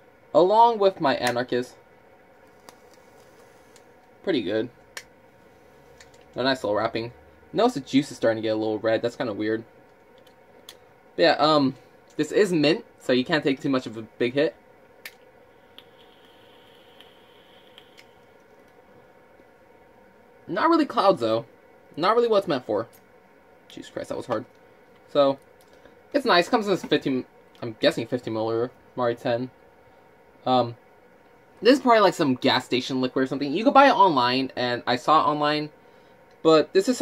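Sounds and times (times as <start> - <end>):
room hiss: 0.0 - 37.0
light crackles: 2.4 - 4.2, 15.0 - 19.6
air hissing through atomizer: 2.5 - 4.0, 15.4 - 18.6.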